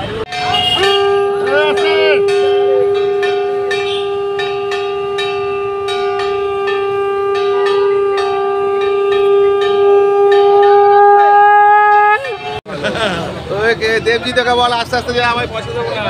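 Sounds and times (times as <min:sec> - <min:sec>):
conch shell blown: 0:00.3 - 0:12.4.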